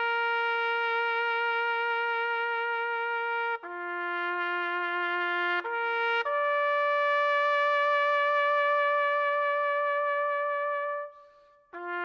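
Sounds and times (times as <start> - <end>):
trumpet holding long note: 0.0 - 12.0.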